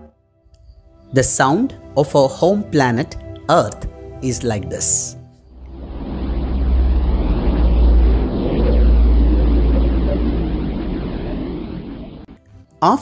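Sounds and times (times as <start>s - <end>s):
deep noisy drone: 5.4s - 12.6s.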